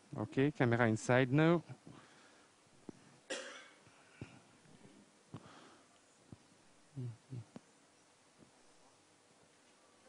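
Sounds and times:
faint cough: 3.3s - 3.8s.

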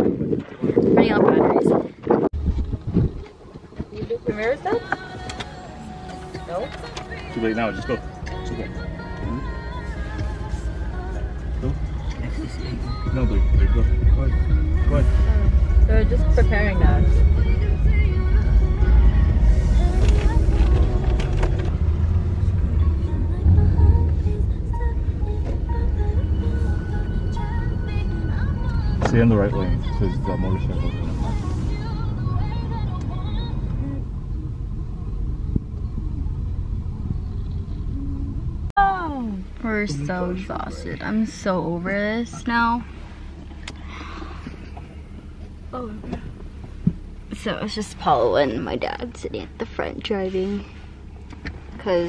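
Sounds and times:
car cabin road rumble: 0.0s - 52.0s
music playing: 4.2s - 34.9s.

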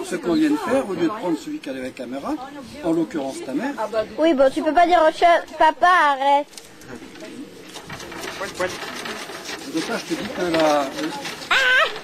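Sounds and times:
camera handling rubbing noise: 6.5s - 12.0s
people talking: 8.4s - 12.0s.

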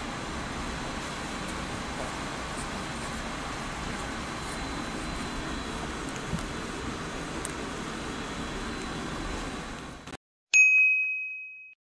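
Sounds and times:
steady background noise: 0.0s - 10.2s
bright bell-like ding: 10.6s - 11.8s.

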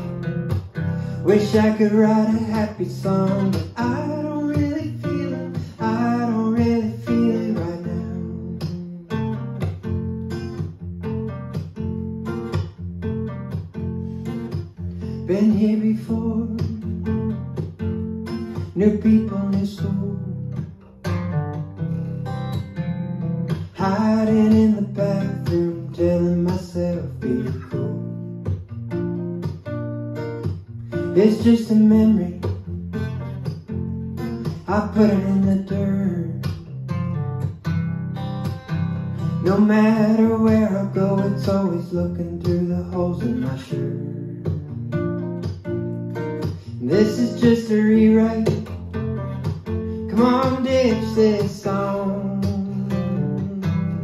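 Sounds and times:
acoustic guitar picked and strummed: 0.0s - 54.0s
man singing: 1.0s - 9.0s, 15.0s - 17.1s, 18.6s - 20.6s, 23.5s - 28.3s, 30.9s - 32.6s, 34.4s - 36.6s, 39.2s - 44.7s, 46.4s - 49.0s, 50.0s - 54.0s.

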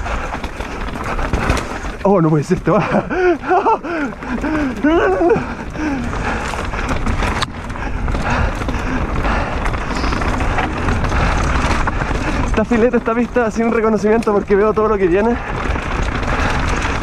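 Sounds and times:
bike rattling and knocking: 0.0s - 17.0s
bike tyres on stony dirt: 0.0s - 17.0s
person exclaiming: 4.8s - 5.4s.

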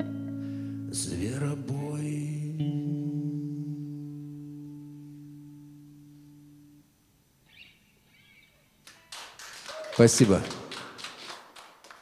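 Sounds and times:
electric guitar chord ringing: 0.0s - 7.1s
applause: 8.8s - 12.0s.

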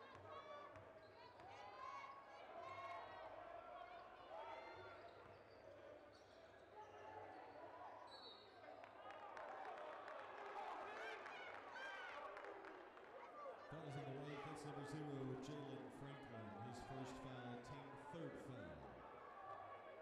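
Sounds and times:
voices in a gym: 0.0s - 20.0s.

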